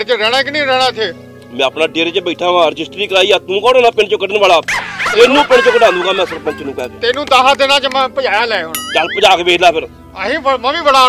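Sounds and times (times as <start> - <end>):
dog whimpering and yipping: 4.7 - 6.7
man speaking: 8.9 - 9.7.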